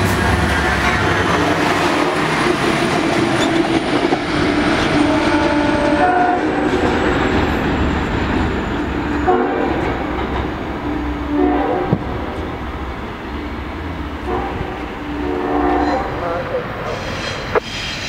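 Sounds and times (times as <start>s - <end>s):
train rumbling past: 0.0s - 18.0s
train horn blasts: 4.9s - 6.7s, 9.2s - 10.0s, 10.8s - 12.3s, 14.2s - 16.4s.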